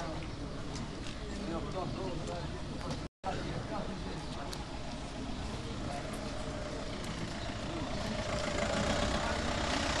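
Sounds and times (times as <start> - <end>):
vehicle engine running: 5.6 - 10.0.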